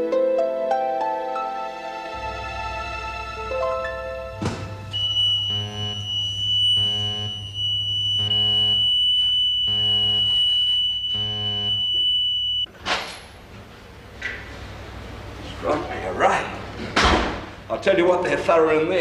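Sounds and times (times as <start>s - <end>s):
steady high whine: 2.1s - 12.7s
security alarm buzzes: 4.3s - 12.7s.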